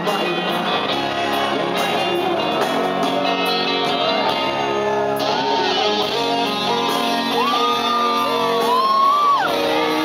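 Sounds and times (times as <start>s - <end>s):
electric guitar chords: 0.0s - 10.0s
live rock band playing: 0.0s - 10.0s
people shouting and whooping: 4.5s - 10.0s.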